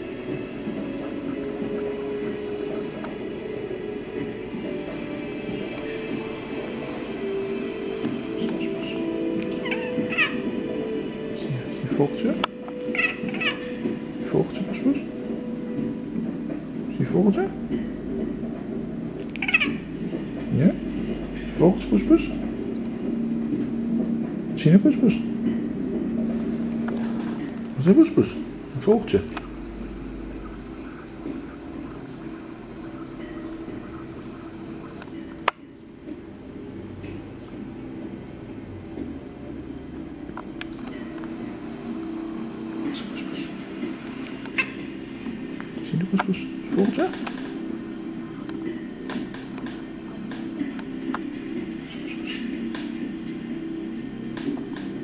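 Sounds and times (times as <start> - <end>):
steady low hum: 0.0 - 55.0
cat chirping chatter: 19.4 - 19.8.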